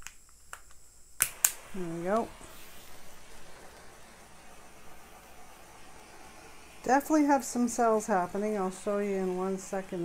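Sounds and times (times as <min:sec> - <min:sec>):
torch flame hissing: 0:01.2 - 0:10.0.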